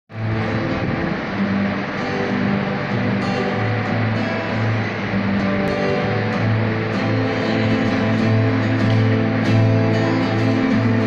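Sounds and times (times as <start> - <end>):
acoustic guitar strumming: 0.1 - 11.0.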